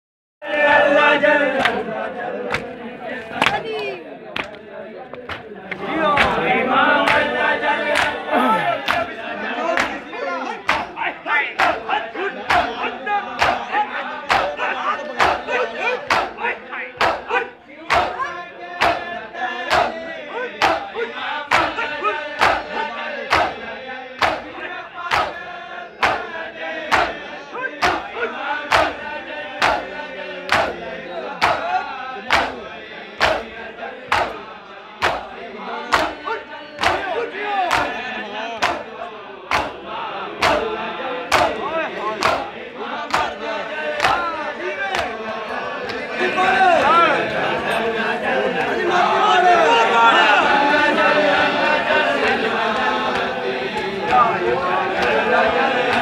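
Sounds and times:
men chanting: 0:00.4 - 0:56.0
palms slapping bare chests: 0:10.7 - 0:11.0, 0:16.1 - 0:16.4, 0:17.9 - 0:18.2, 0:18.8 - 0:19.1, 0:20.6 - 0:20.9, 0:21.5 - 0:21.8, 0:22.4 - 0:22.7, 0:24.2 - 0:24.5, 0:25.1 - 0:25.4, 0:27.8 - 0:28.1, 0:28.7 - 0:29.0, 0:29.6 - 0:29.9, 0:30.5 - 0:30.8, 0:31.4 - 0:31.7, 0:32.3 - 0:32.6, 0:34.1 - 0:34.4, 0:35.0 - 0:35.3, 0:35.9 - 0:36.2, 0:36.8 - 0:37.1, 0:37.7 - 0:38.0, 0:38.6 - 0:38.9, 0:39.5 - 0:39.8, 0:40.4 - 0:40.7, 0:41.3 - 0:41.6, 0:42.2 - 0:42.5, 0:44.0 - 0:44.2.

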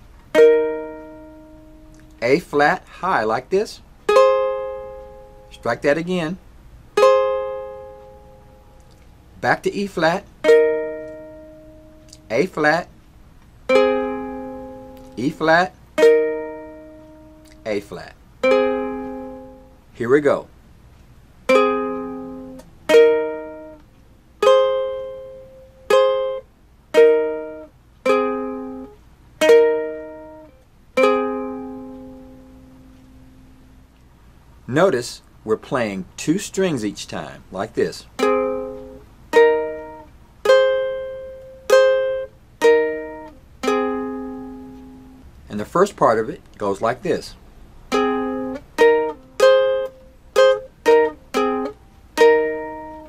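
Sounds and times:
ukulele chord strummed: 0:00.0 - 0:12.9, 0:13.6 - 0:20.4, 0:21.0 - 0:34.0, 0:38.1 - 0:47.3, 0:47.9 - 0:53.0.

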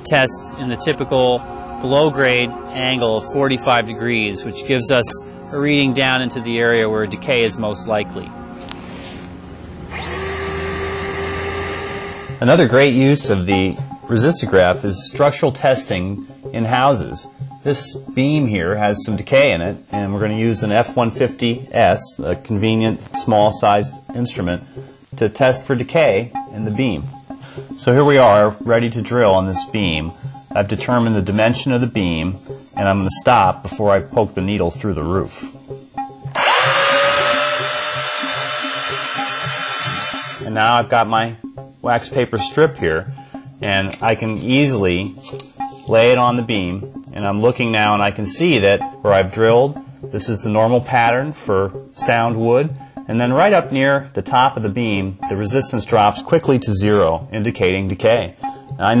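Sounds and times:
drill high whine: 0:09.9 - 0:12.5, 0:36.3 - 0:40.5.

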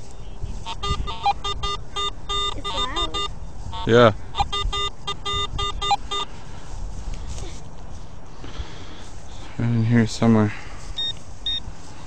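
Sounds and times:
metal detector beeping: 0:00.6 - 0:06.4, 0:11.0 - 0:11.7.

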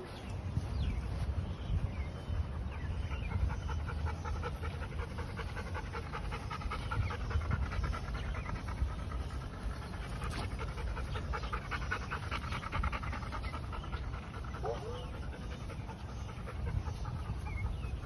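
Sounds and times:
dog panting: 0:02.0 - 0:18.0.

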